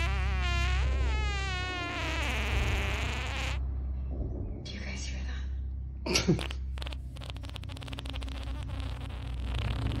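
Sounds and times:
buzzy fart sound effect: 0.0s - 3.6s, 6.1s - 10.0s.

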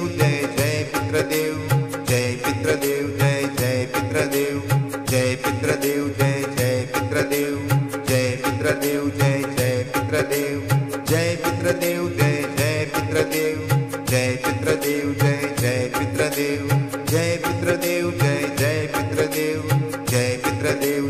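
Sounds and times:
light percussion beat: 0.0s - 21.0s.

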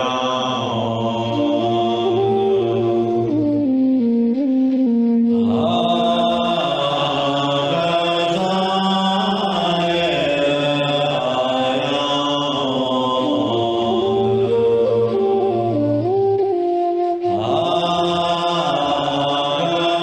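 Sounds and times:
man chanting in long held notes: 0.0s - 3.6s, 5.3s - 16.2s, 17.2s - 20.0s.

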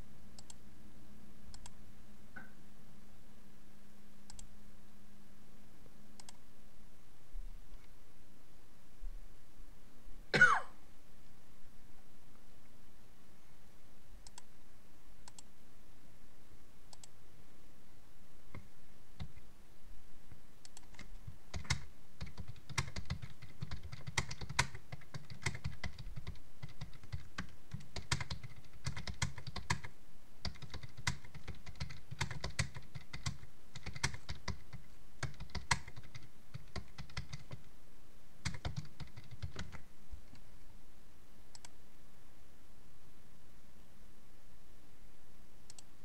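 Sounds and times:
typing on computer keyboard: 20.7s - 37.7s, 38.4s - 39.8s.

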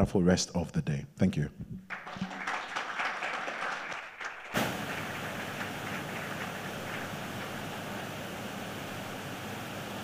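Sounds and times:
audience applause: 1.9s - 8.3s.

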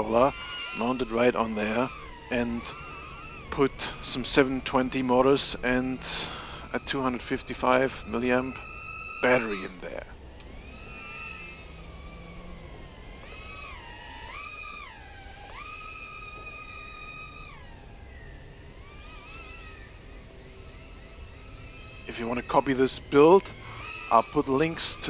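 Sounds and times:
drone propeller whine: 0.0s - 25.0s.

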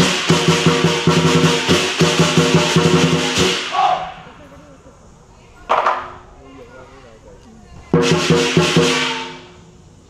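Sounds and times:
drum strikes: 0.0s - 4.2s, 7.9s - 9.6s
crashing cymbals: 0.0s - 4.4s, 8.0s - 10.0s.

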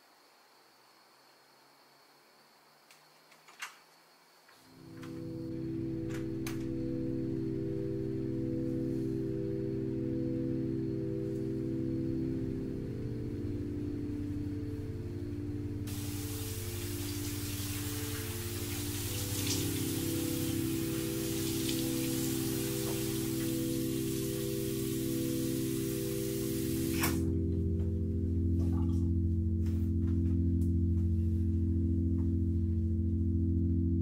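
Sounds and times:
steady hiss: 0.0s - 27.4s
soft music of low chords: 4.7s - 34.0s.

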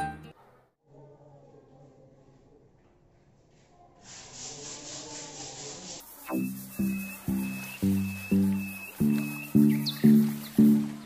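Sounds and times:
background music: 0.0s - 0.3s, 6.4s - 11.0s
sandpaper rubbing on wood: 4.0s - 8.4s.

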